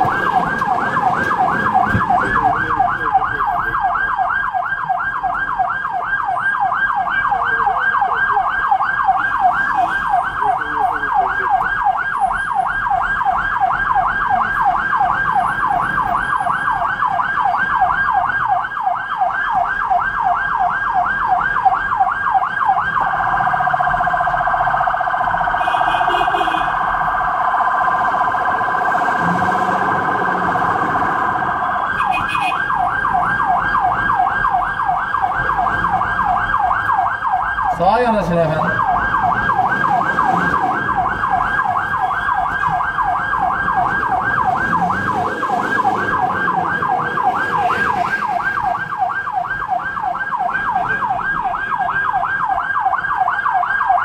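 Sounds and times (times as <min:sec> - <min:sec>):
ambulance siren yelp and warble: 0:00.0 - 0:54.0.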